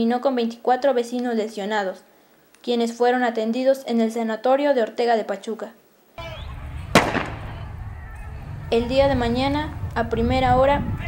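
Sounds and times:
low microphone rumble: 6.2s - 11.0s
sharp bang: 6.8s - 7.8s.

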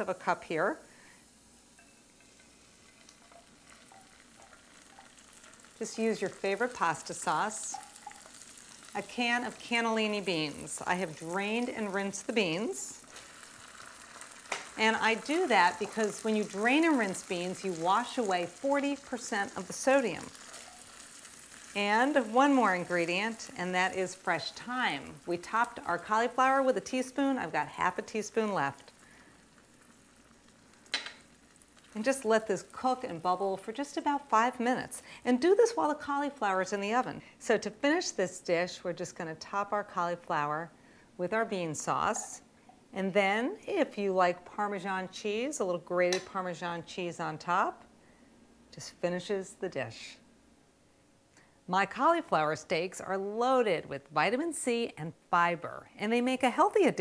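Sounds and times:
sauce sizzling in a skillet: 0.0s - 40.0s, 40.7s - 42.9s.

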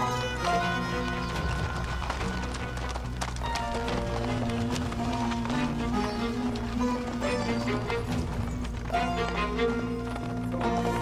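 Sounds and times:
background music with sustained tones: 0.0s - 11.0s
horse hoofbeats: 0.0s - 11.0s.

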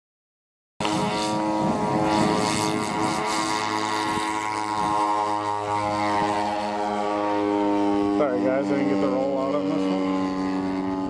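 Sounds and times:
model plane engines droning: 0.8s - 11.0s.

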